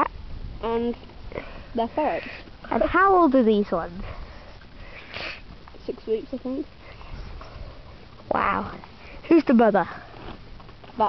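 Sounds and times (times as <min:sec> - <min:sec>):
short sniff: 0:04.1 - 0:05.5.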